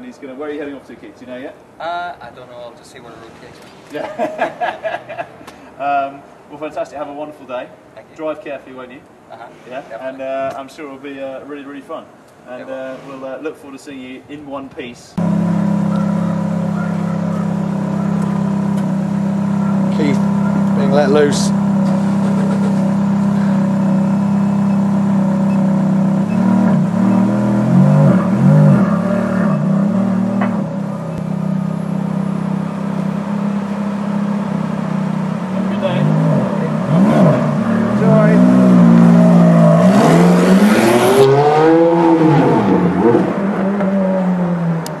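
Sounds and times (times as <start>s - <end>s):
car engine idling and revving: 15.2s - 45.0s.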